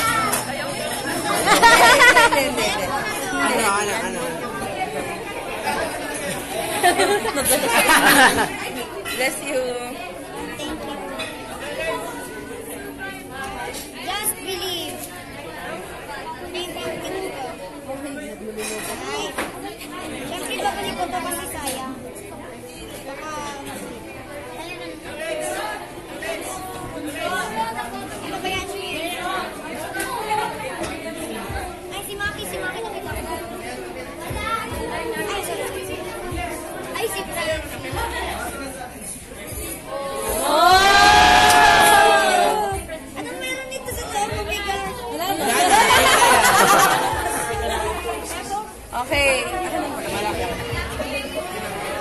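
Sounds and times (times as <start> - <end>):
background chatter: 0.0 - 52.0.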